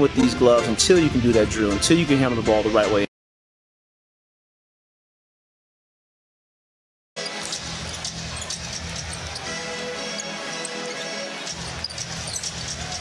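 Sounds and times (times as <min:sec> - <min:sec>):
arena music: 0:00.0 - 0:03.1, 0:07.2 - 0:13.0
crowd noise: 0:07.2 - 0:13.0
shoe squeaks: 0:07.2 - 0:13.0.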